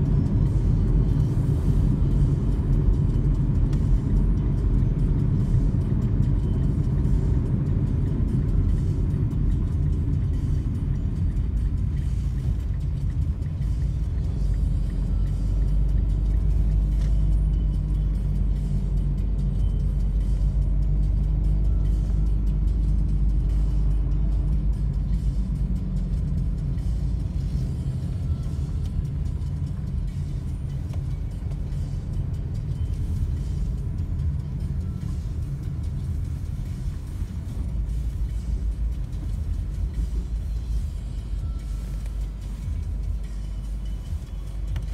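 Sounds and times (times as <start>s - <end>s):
car engine and tyre rumble: 0.0s - 44.9s.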